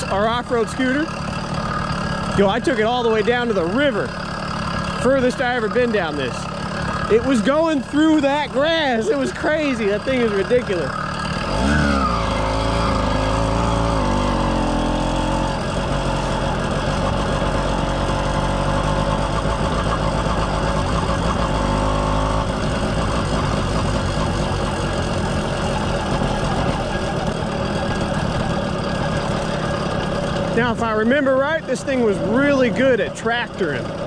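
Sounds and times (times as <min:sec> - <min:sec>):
two-stroke engine running: 0:00.0 - 0:34.0.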